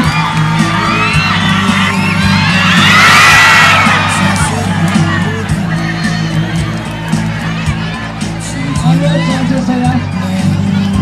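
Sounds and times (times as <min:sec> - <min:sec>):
crowd cheering and shouting: 0:00.0 - 0:11.0
music with a steady beat: 0:00.0 - 0:11.0.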